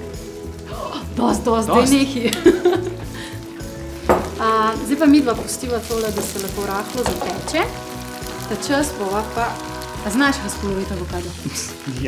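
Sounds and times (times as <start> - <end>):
tofu sizzling in a pan: 0.0 - 12.0.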